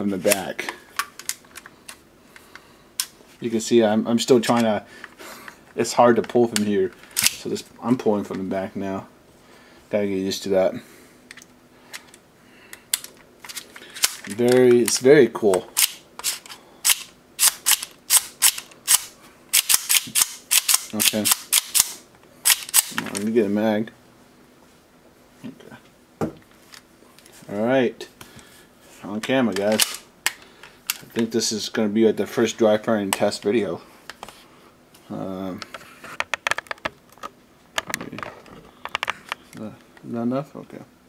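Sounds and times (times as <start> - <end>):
airsoft pistol clicking: 16.8 - 23.0.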